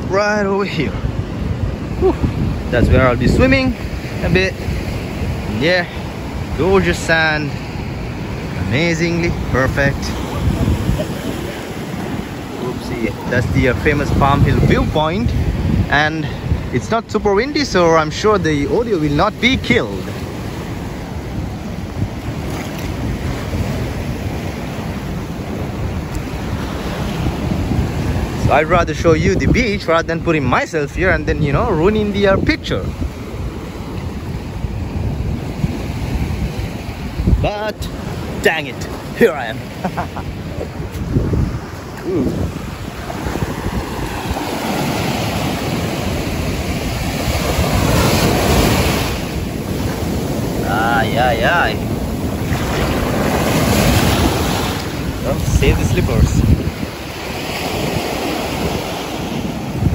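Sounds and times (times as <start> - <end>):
surf breaking on a beach: 0.0 - 59.9
waves washing up a sandy shore: 0.0 - 59.9
wind buffeting microphone: 0.0 - 59.9.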